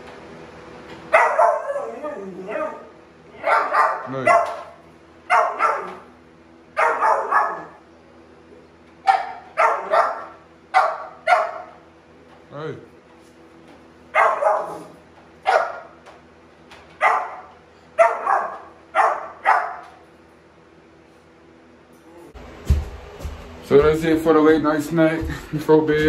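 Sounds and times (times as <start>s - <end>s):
dog barking with echo: 1.1s - 2.8s, 3.4s - 6.0s, 6.8s - 7.8s, 9.1s - 11.8s, 14.2s - 16.0s, 17.0s - 19.9s.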